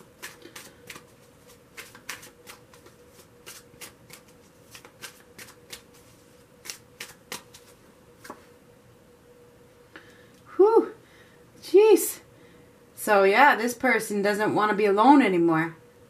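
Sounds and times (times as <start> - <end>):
cards being shuffled: 0.0 - 8.5.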